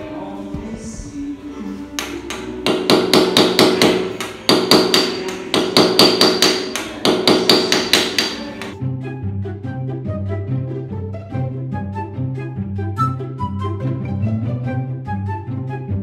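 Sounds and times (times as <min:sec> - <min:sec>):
hammer striking metal chisel: 0:02.0 - 0:08.8.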